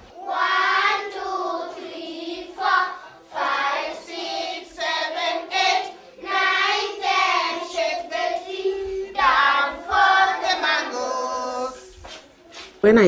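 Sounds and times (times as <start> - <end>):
children singing in unison: 0.0 - 11.9.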